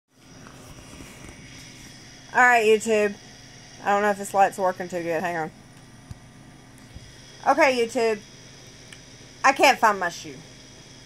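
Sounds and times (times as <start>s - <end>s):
steady hum and hiss: 0.1s - 11.0s.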